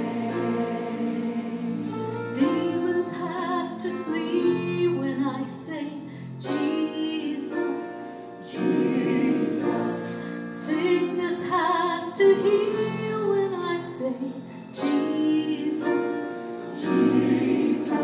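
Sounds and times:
choir singing: 0.0 - 3.2, 8.4 - 11.5, 14.9 - 18.0.

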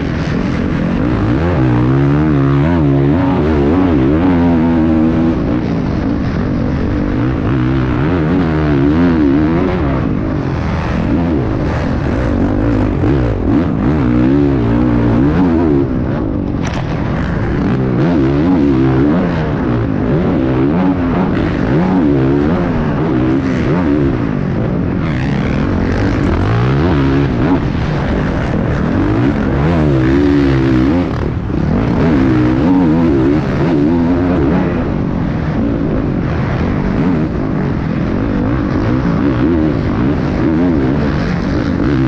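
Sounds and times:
motocross bike engine revving: 0.0 - 42.0.

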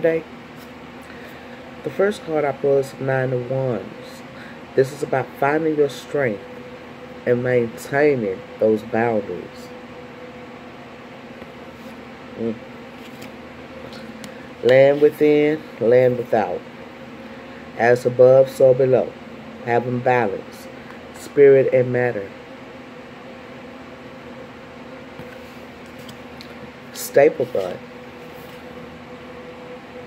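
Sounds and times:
machinery buzzing hum: 0.0 - 30.0.

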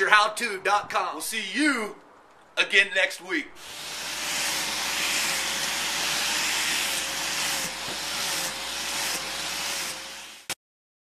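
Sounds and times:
grinder grinding steel: 3.6 - 10.6.

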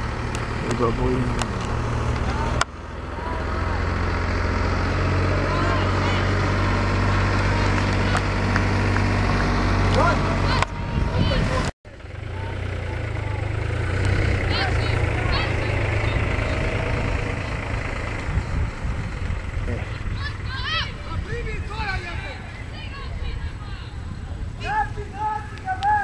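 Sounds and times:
low rumble: 0.0 - 25.6
distant players shouting: 1.2 - 17.9, 19.4 - 26.0.

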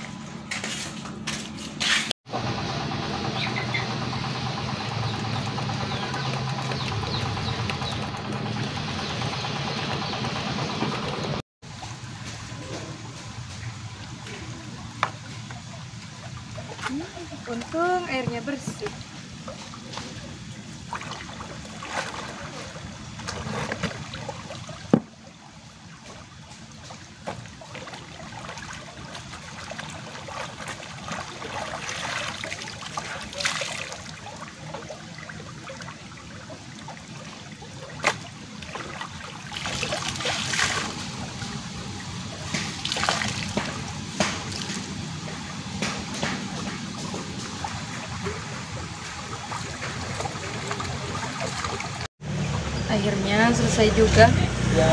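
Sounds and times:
splashing of clothes scrubbed: 14.0 - 52.1.

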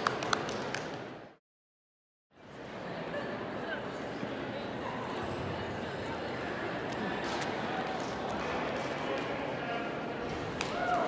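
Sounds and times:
arena crowd hubbub: 2.3 - 11.0.

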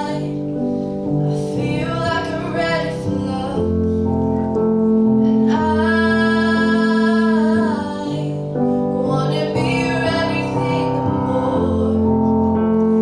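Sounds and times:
girl singing pop ballad: 0.0 - 0.6, 1.3 - 4.0, 5.2 - 12.6
instrumental backing music: 0.0 - 13.0.

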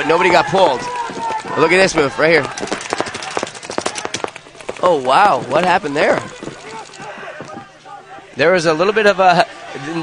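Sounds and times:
paintball markers firing: 0.8 - 7.2.

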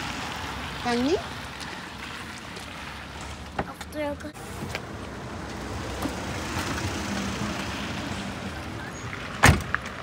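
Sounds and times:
tailgate slamming shut: 9.4 - 9.8.

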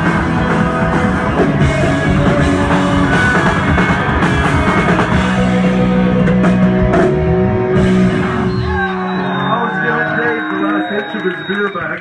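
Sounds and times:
drum kit: 0.0 - 10.6
bass guitar: 0.0 - 11.5
electric guitar: 0.0 - 12.0.

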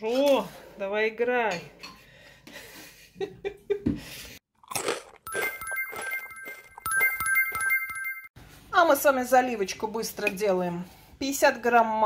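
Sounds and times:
chiming tones: 5.3 - 8.4.

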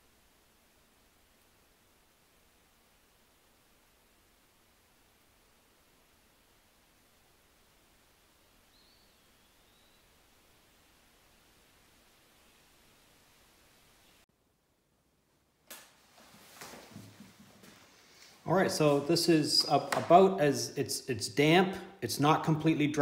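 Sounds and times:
faint room hiss: 0.0 - 23.0.

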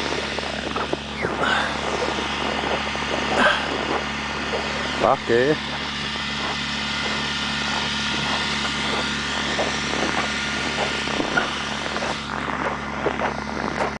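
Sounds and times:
road noise hiss: 0.0 - 14.0
vehicle engine humming: 0.0 - 14.0.

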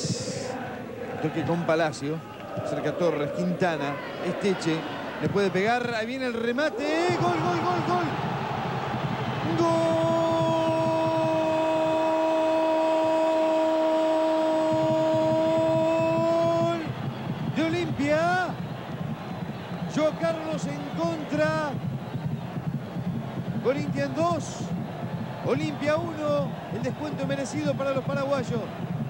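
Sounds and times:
stadium crowd noise: 0.0 - 29.0
commentator shouting goal: 6.6 - 8.2.

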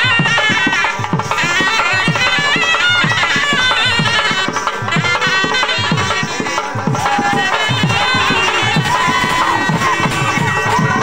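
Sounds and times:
hand drums beating: 0.0 - 11.0
wind instrument melody: 0.0 - 11.0.

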